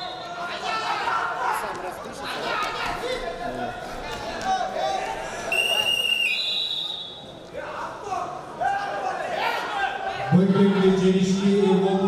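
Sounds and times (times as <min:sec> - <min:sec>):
voices in hall: 0:00.0 - 0:12.0.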